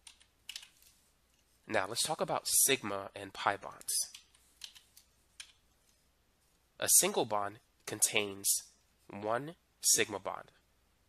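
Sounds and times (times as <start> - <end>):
faint keyboard clicks: 0.0 - 1.4, 4.0 - 6.0.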